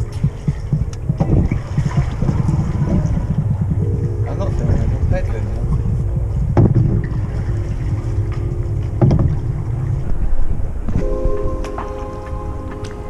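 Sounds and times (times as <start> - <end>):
paddle strokes: 0.0 - 13.0
paddle water splashing: 0.0 - 13.0
wind rumble on microphone: 0.0 - 13.0.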